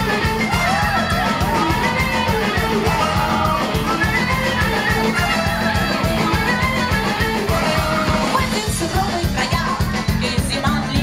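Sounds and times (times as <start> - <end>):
drum beat: 0.0 - 11.0
live rock band playing: 0.0 - 11.0.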